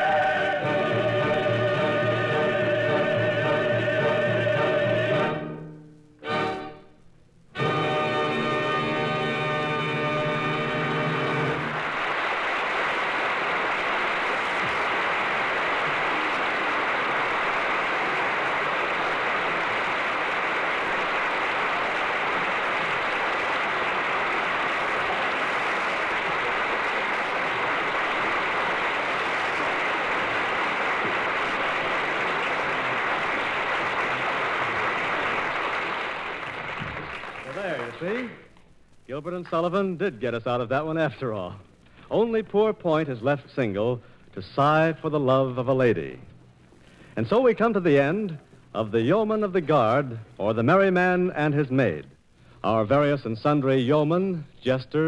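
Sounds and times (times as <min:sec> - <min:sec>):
audience applauding: 0:07.9 - 0:38.6.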